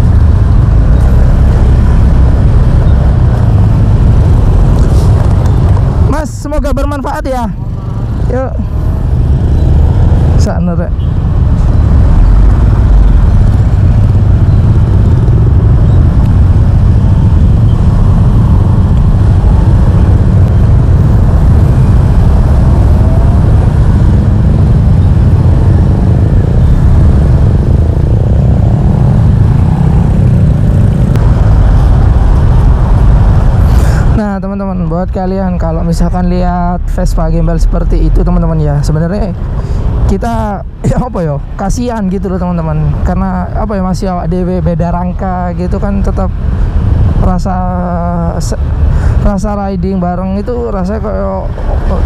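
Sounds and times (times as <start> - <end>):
road and engine noise: 0.0 - 52.0
wind rumble on microphone: 0.0 - 52.0
man's voice: 40.1 - 46.3.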